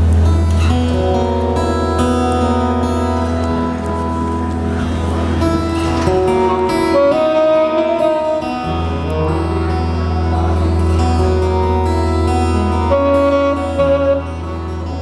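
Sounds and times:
acoustic guitar: 0.0 - 15.0
live band playing: 0.0 - 15.0.

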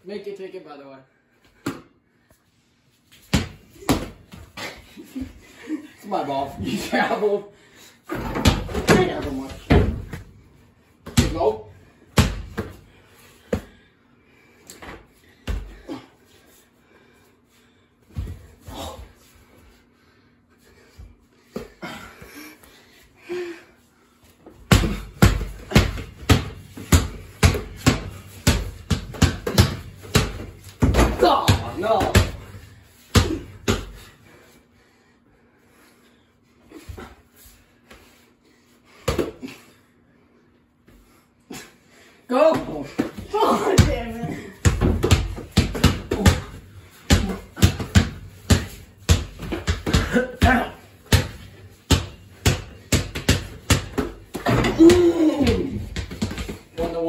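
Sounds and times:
basketball bouncing on hard floor: 8.2 - 10.3, 24.7 - 32.5, 42.6 - 57.0.

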